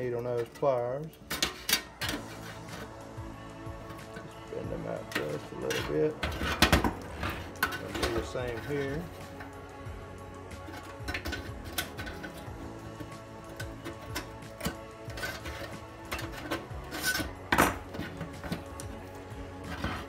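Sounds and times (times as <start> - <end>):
background music: 0.0 - 20.0
pliers scraping and clicking on metal: 0.3 - 3.0, 3.9 - 9.6, 10.6 - 20.0.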